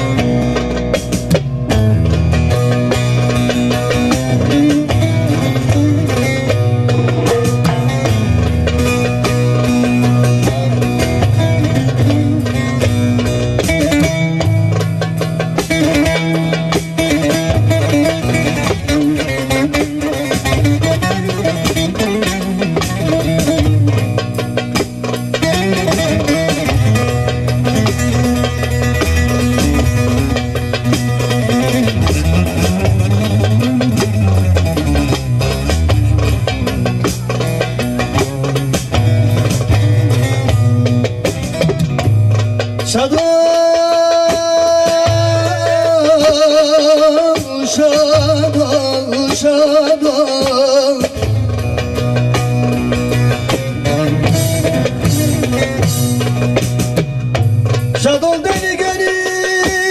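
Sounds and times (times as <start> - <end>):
hand drum playing: 0.0 - 59.9
plucked long-necked lute melody: 0.0 - 59.9
saz picking and strumming: 0.0 - 59.9.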